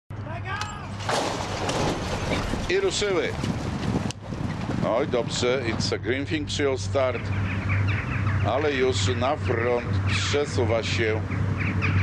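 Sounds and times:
starting gates crashing open: 0.8s - 4.0s
racehorses galloping: 1.1s - 7.6s.

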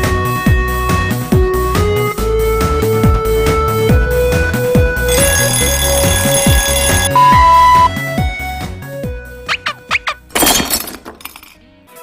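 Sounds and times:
alarm bell ringing: 5.1s - 7.9s.

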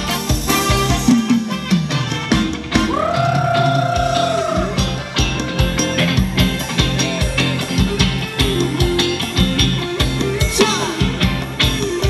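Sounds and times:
drums: 0.0s - 12.0s
live band playing dance music: 0.0s - 12.0s.

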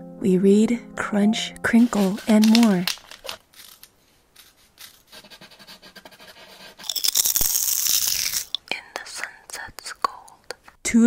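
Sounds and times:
pencil sharpener scraping: 1.7s - 8.6s
crisp crackling: 1.8s - 5.2s, 6.8s - 8.6s.

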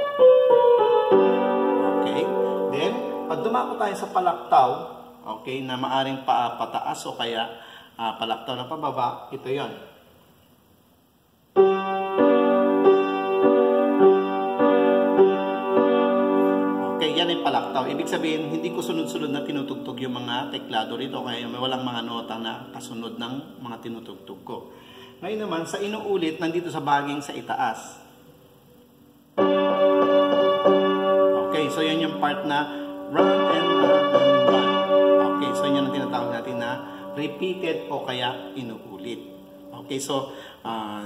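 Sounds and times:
upright piano melody: 0.0s - 7.0s, 11.6s - 24.4s, 29.4s - 40.5s.

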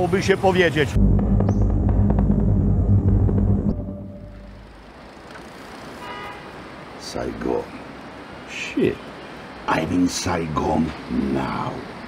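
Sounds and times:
loud deep rumble: 0.9s - 5.0s
low steady hum: 1.0s - 5.1s
faint background noise: 4.4s - 12.0s.

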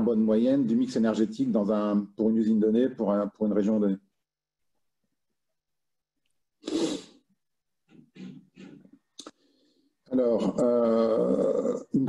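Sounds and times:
man breathing: 9.2s - 10.1s
man murmuring: 10.1s - 12.0s.

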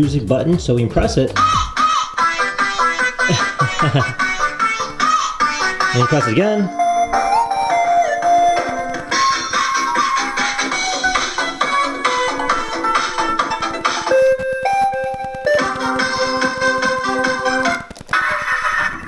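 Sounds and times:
electronic keyboard tune with beat: 0.0s - 19.0s.

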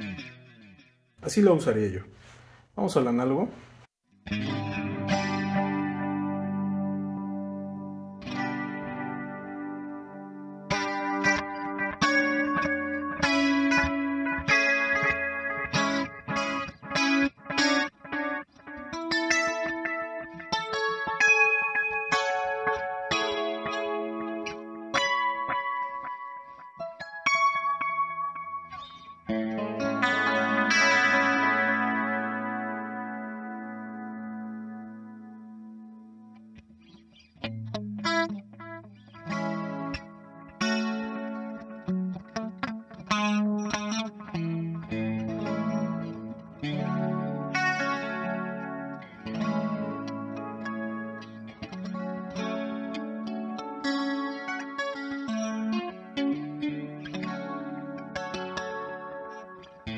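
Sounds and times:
electric guitar with delay repeats: 0.0s - 1.7s, 4.2s - 59.9s.

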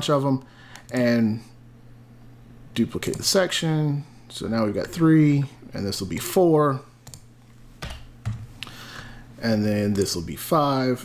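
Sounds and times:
computer keyboard keystrokes: 0.7s - 1.1s, 7.0s - 8.4s.

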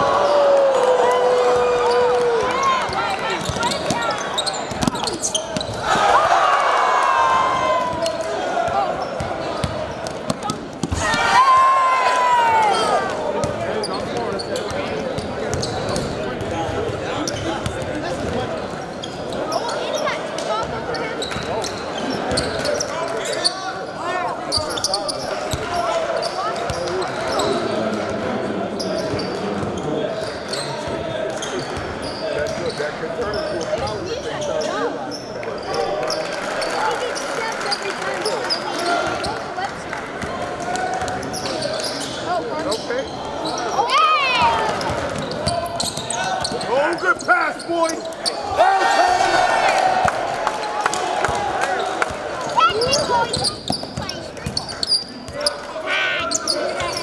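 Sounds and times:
spectator chatter: 0.0s - 57.0s
shoe squeak: 2.9s - 5.8s, 13.8s - 16.1s, 18.8s - 20.2s, 20.9s - 23.8s, 24.5s - 27.6s, 30.2s - 35.9s, 41.3s - 48.5s, 52.4s - 57.0s.

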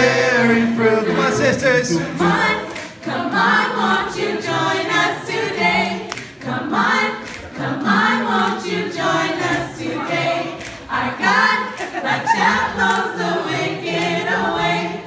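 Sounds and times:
choir singing a cappella: 0.0s - 15.0s.

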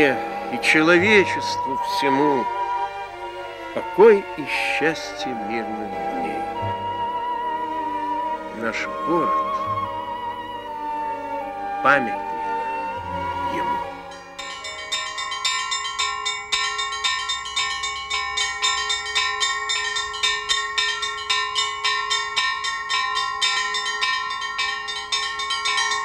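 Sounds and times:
church bells pealing: 0.0s - 26.0s.

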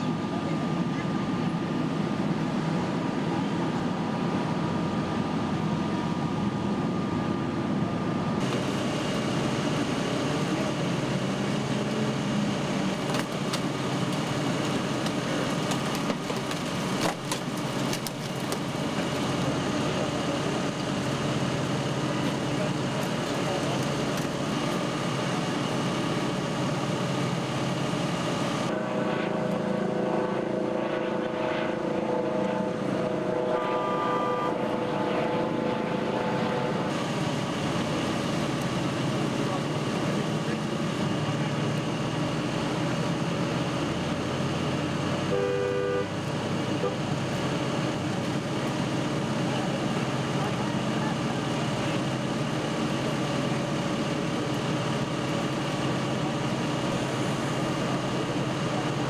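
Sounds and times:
fire trucks idling: 0.0s - 59.0s
higher steady machine tone: 18.8s - 42.1s, 45.2s - 59.0s.

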